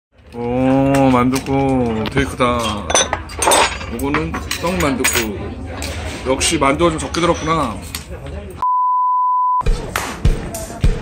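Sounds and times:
murmur of voices: 0.3s - 8.6s, 9.7s - 11.0s
dish clatter: 0.9s - 5.4s
steady electronic beep: 8.6s - 9.6s.

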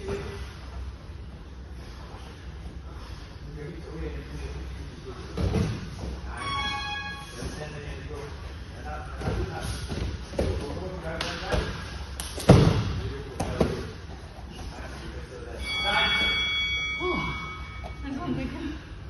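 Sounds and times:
bodies thudding on padded mats: 5.2s - 6.2s, 9.1s - 14.2s.

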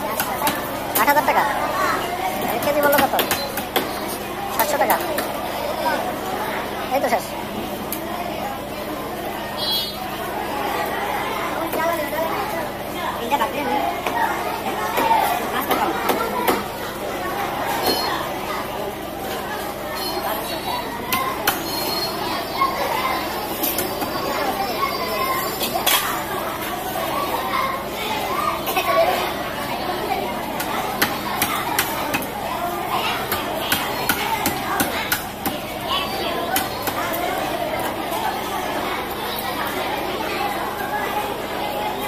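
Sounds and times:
people chattering: 0.0s - 42.0s.

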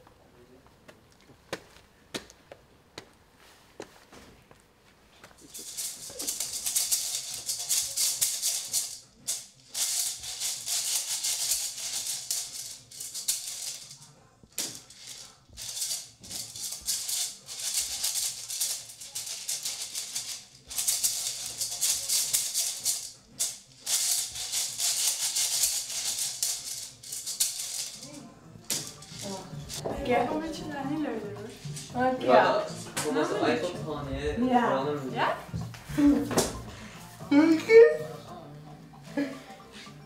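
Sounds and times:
maraca rattling: 5.4s - 33.3s.

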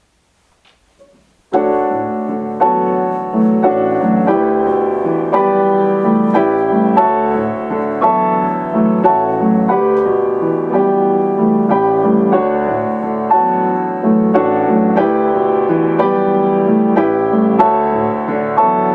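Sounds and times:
piano duet latin rhythm: 0.6s - 18.9s.

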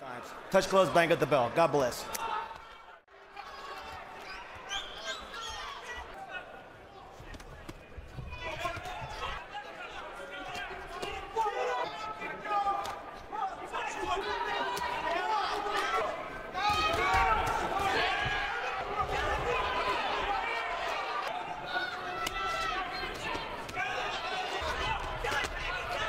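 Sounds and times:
arena crowd voices: 0.0s - 26.0s.

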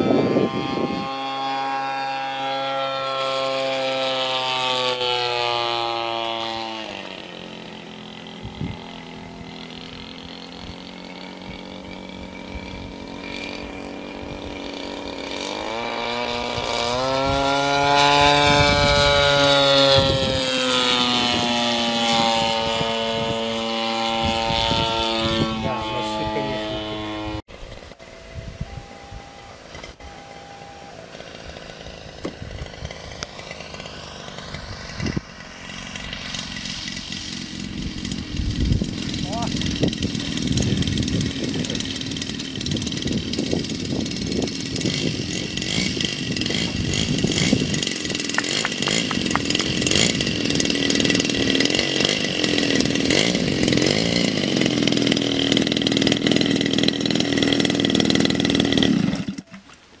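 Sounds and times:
model aircraft engine running: 0.0s - 59.8s.

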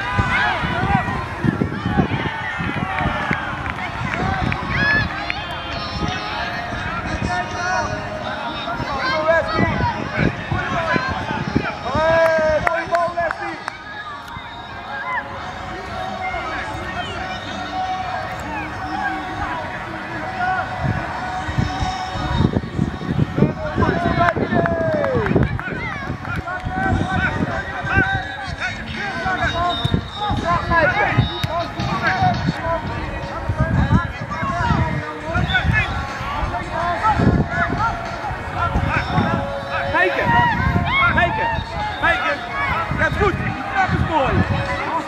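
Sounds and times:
voices calling and shouting: 0.0s - 45.0s.

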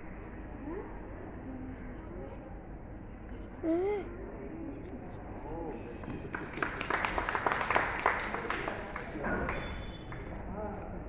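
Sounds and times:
audience clapping: 6.3s - 10.3s.

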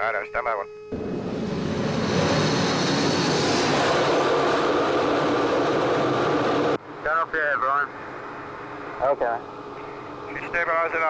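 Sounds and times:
muffled jet engine idling: 0.0s - 11.0s.

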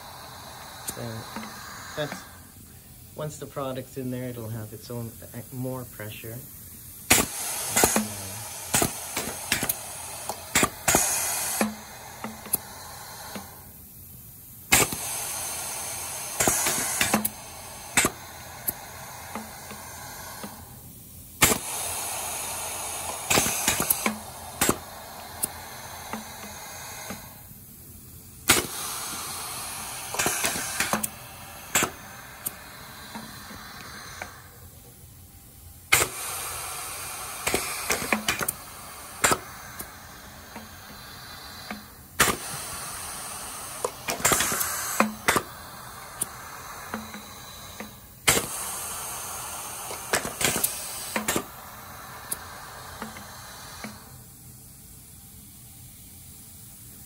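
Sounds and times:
compressed air hissing: 0.0s - 57.0s
pneumatic valves clicking: 0.0s - 57.0s.

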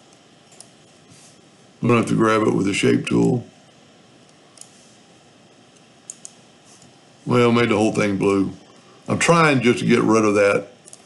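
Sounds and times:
faint room hiss: 0.0s - 11.0s
computer mouse clicks: 0.1s - 0.8s, 4.2s - 4.8s, 5.8s - 6.9s.

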